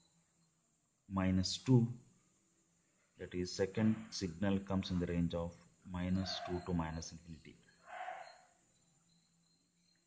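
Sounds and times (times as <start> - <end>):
faint low hum: 0.0 - 7.7.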